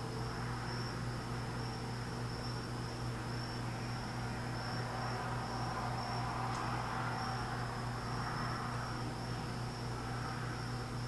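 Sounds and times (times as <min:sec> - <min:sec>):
constant low hum: 0:00.0 - 0:11.0
high-pitched whine: 0:00.0 - 0:11.0.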